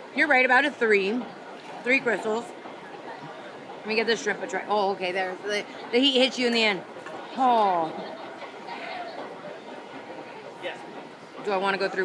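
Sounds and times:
distant chatter of passers-by: 0.0s - 12.0s
faint voices: 0.0s - 12.0s.

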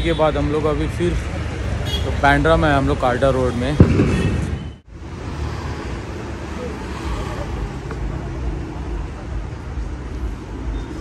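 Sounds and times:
low rumble of passing vehicles: 0.2s - 11.0s.

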